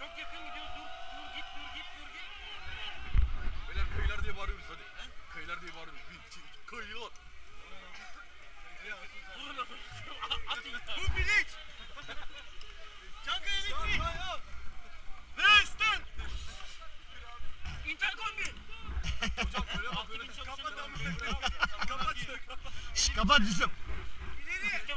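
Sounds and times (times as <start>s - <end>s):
people calling and shouting: 0.0s - 24.9s
low uneven rumble: 18.6s - 24.9s.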